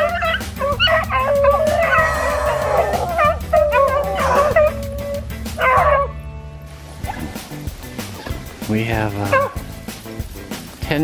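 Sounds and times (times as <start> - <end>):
dogs baying and yelping: 0.0 - 6.2, 9.2 - 9.7.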